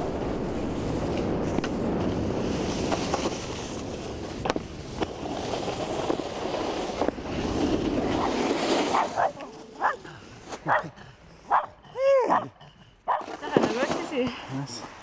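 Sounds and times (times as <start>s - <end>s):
snowboard sliding over snow: 0.0s - 10.9s, 13.1s - 15.0s
dog barking and yelping: 8.9s - 13.3s.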